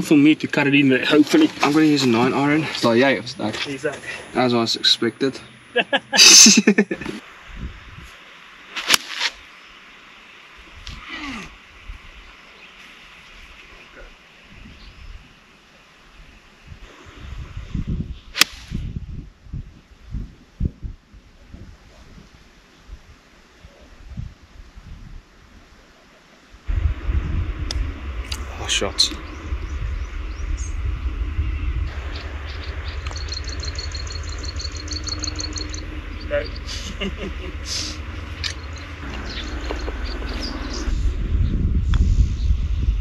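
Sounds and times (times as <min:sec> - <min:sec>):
wind buffeting microphone: 0:07.4 - 0:08.2, 0:14.5 - 0:15.4, 0:16.6 - 0:25.6, 0:26.6 - 0:43.0
bird chirping trill: 0:28.0 - 0:41.7.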